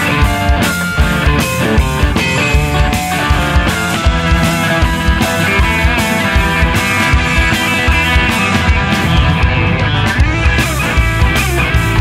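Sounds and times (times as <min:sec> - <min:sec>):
blues-rock band playing: 0:00.0 - 0:12.0
guitar with bent notes: 0:00.0 - 0:12.0.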